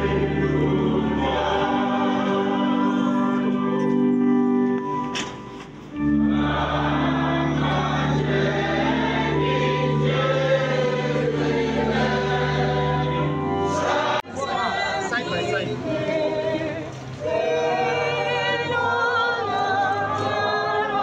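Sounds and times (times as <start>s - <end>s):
choir singing unaccompanied: 0.0s - 3.8s, 6.0s - 21.0s
congregation and choir singing hymn: 0.0s - 4.7s, 5.9s - 21.0s
keyboard bass notes: 0.0s - 14.2s.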